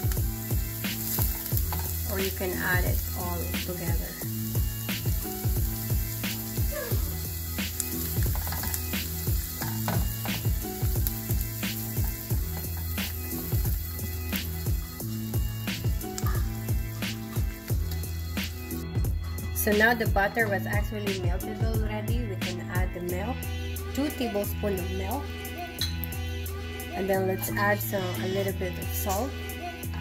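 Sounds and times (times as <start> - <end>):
spatula stirring in a pan: 0.0 - 15.0
butter and onion sizzling in a pan: 0.0 - 19.2
background music with drum beat: 0.0 - 27.7.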